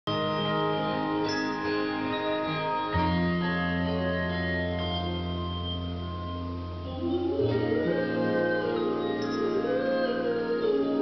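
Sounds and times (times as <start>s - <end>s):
handbell choir ringing chords: 0.1s - 11.0s.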